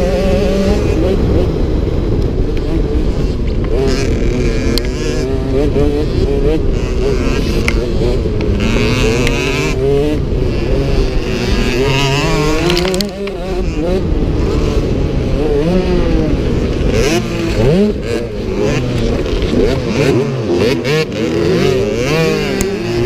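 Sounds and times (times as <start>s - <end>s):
motorbike engine under throttle: 0.0s - 23.0s
wind rumble on microphone: 0.0s - 23.0s.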